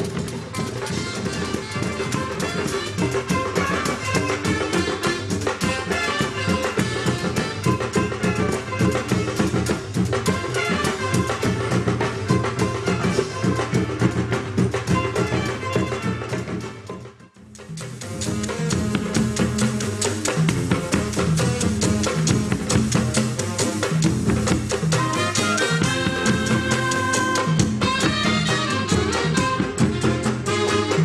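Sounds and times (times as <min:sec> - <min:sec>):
saxophones and clarinet melody: 0:00.0 - 0:17.2, 0:24.8 - 0:31.0
drums beating steady rhythm: 0:00.0 - 0:31.0.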